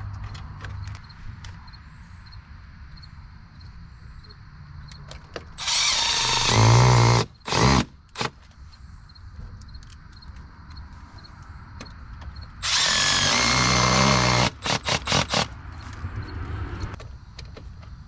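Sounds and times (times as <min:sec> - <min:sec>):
cordless drill driving screws: 0:05.6 - 0:08.4, 0:12.6 - 0:15.5.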